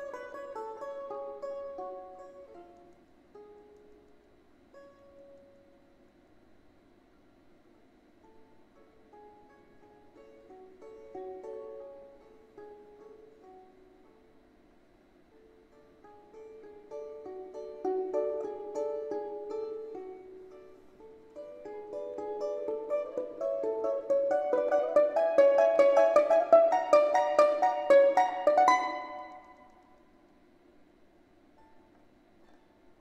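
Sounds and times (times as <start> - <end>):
balalaika folk melody: 0.0 - 5.8, 8.2 - 14.4, 15.3 - 30.1.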